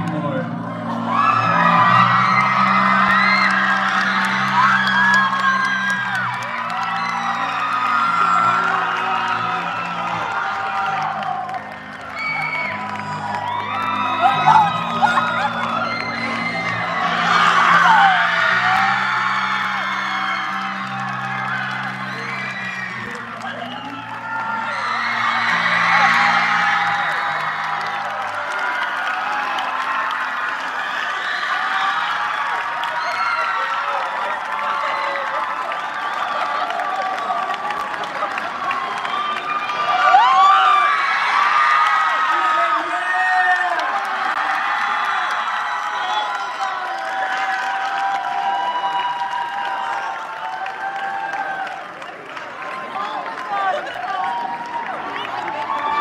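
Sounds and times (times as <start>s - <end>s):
audience whooping and cheering: 0.0s - 56.0s.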